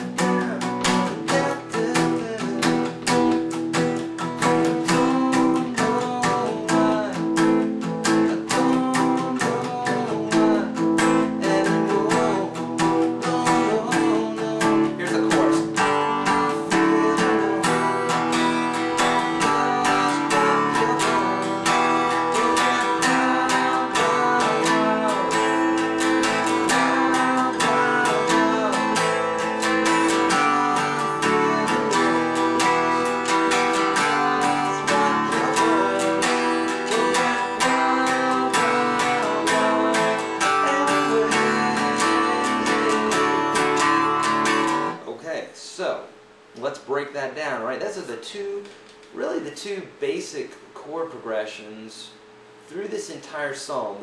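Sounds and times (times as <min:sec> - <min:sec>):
acoustic guitar strummed: 0:00.0 - 0:45.1.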